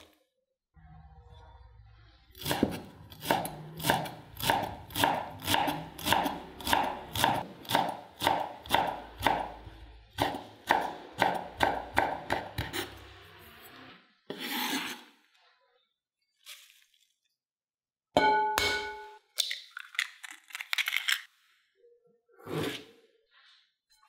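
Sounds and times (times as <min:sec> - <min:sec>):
knife chopping on cutting board: 0:02.5 - 0:09.6
knife blade scraping board: 0:12.6 - 0:15.2.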